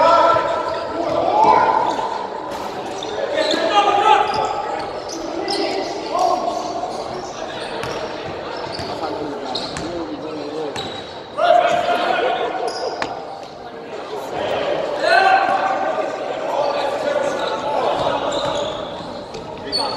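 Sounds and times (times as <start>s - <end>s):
sneakers squeaking on gym floor: 0.2s - 12.0s, 12.6s - 13.7s, 16.6s - 19.9s.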